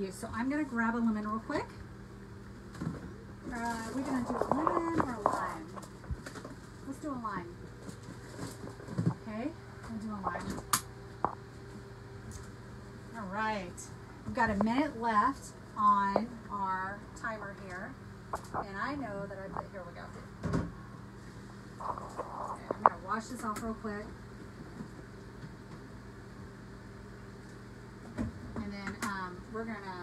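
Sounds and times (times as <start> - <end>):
microwave oven humming: 0.0 - 30.0.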